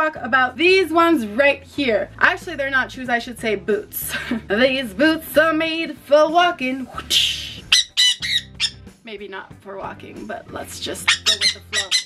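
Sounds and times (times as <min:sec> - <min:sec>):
parrot squawking: 0:07.0 - 0:08.9, 0:10.9 - 0:12.0.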